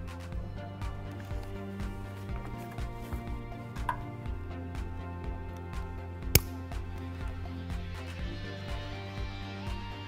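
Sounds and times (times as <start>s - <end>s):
background music with steady beat: 0.0s - 10.0s
metal snap hook click: 6.3s - 6.6s.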